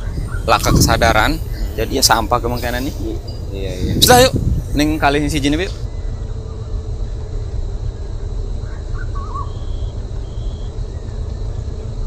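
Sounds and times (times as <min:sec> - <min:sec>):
faint bird chirps: 0:00.0 - 0:12.0
low outdoor rumble: 0:00.0 - 0:12.0.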